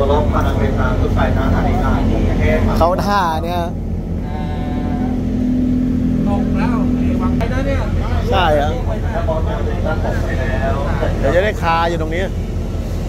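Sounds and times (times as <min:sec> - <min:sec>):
people talking: 0:00.0 - 0:05.4, 0:06.2 - 0:12.5
diesel train engine rumble: 0:00.0 - 0:13.0.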